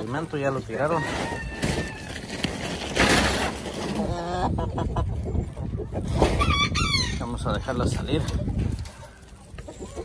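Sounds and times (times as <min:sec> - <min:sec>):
wind rumbling on microphone: 0:01.2 - 0:10.0
chicken clucking: 0:03.7 - 0:10.0.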